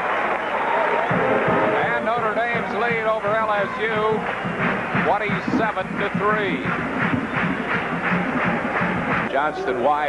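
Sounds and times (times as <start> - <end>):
stadium crowd din: 0.0 - 10.0
band playing held notes: 1.0 - 9.3.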